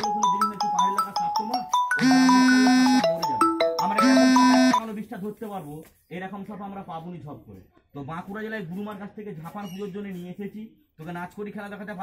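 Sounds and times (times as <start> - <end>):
mobile phone ringtone: 0.0 - 4.8.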